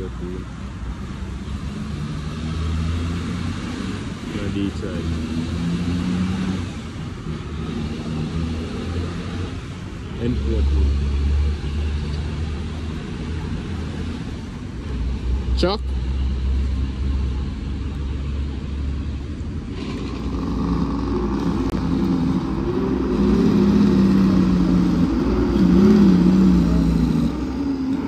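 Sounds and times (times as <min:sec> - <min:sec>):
low engine sound: 0:00.0 - 0:28.0
vehicles passing: 0:00.0 - 0:28.0.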